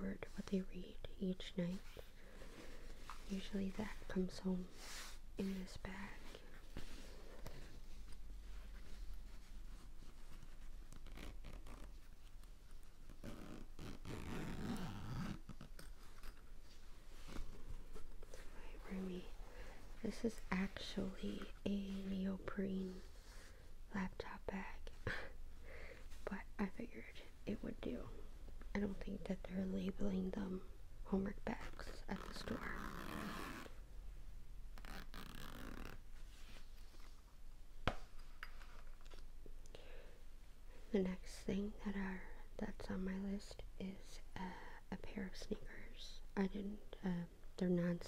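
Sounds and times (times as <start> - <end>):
fabric bag rubbing and rustling: 6.2 - 21.2, 31.7 - 33.8, 34.8 - 37.2
bag zipper being run: 13.2 - 15.7, 34.8 - 36.0.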